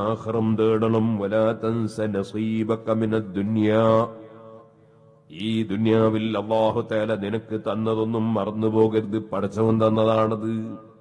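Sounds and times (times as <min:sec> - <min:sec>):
man chanting religious address: 0:00.0 - 0:04.4, 0:05.3 - 0:11.0.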